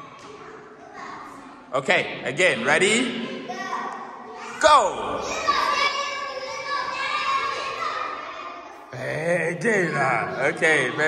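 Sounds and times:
young children calling and chattering: 0.0 - 11.0.

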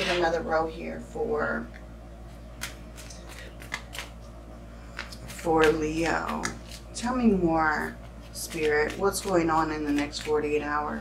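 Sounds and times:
cards being shuffled: 2.6 - 6.9.

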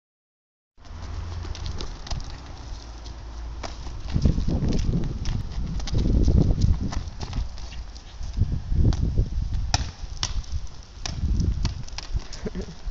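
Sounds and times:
football kicked and bouncing on asphalt: 0.8 - 12.8.

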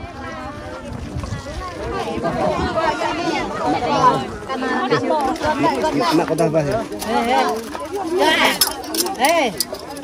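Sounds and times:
people talking: 0.0 - 10.0
tableware clinking: 8.3 - 10.0.

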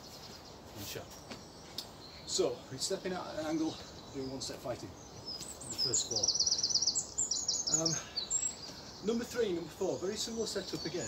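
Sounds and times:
faint high bird chirps: 0.0 - 11.0.

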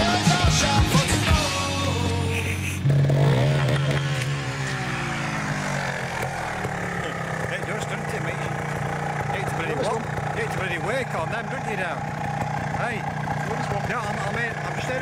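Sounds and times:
motorcycle engine revving and idling: 0.0 - 15.0.

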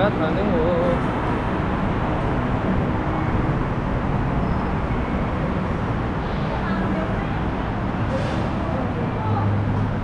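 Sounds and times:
low rumbling station background noise: 0.0 - 10.0.

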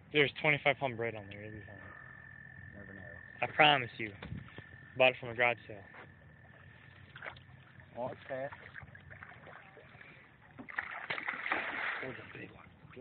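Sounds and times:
fish splashing water: 6.6 - 12.4.

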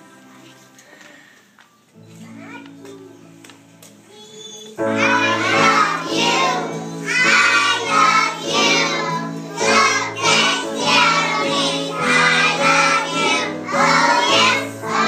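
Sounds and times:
children singing in unison: 4.9 - 15.0.

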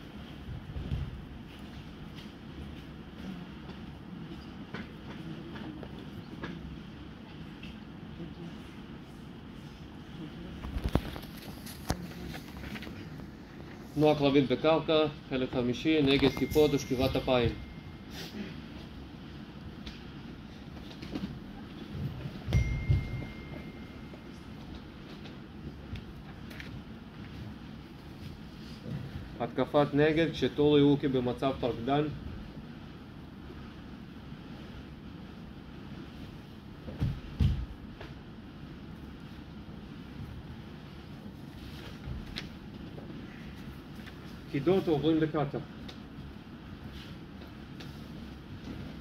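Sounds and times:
low room rumble: 0.0 - 49.0
bodies shifting on mats: 36.3 - 38.3.

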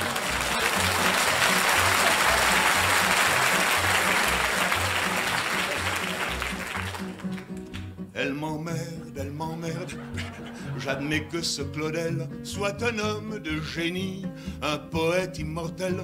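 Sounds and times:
audience applause: 0.0 - 7.8
nylon-string guitar: 4.3 - 16.0.

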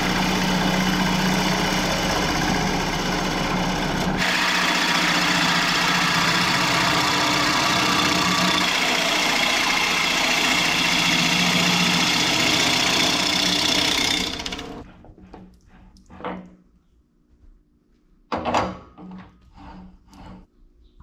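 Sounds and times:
wood lathe motor hum: 0.0 - 15.0
gouge scraping spinning wood: 0.0 - 16.6, 19.5 - 20.5.

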